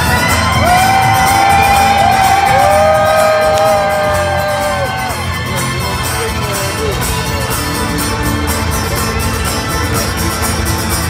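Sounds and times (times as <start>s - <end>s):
low band accompaniment: 0.0s - 11.0s.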